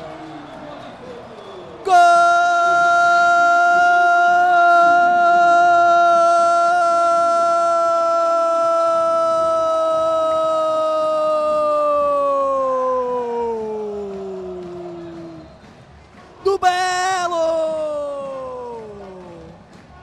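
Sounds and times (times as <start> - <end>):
man shouting a long held cry: 1.8 - 15.2, 16.5 - 19.5.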